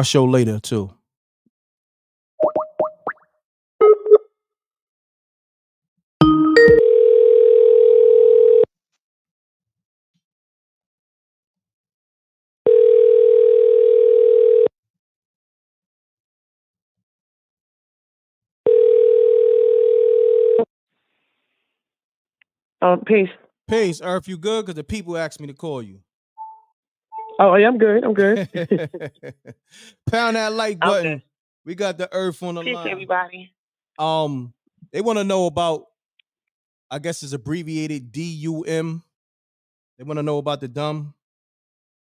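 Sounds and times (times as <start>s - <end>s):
telephone ringback tone: 6.2s - 8.7s, 12.7s - 14.7s, 18.7s - 20.7s.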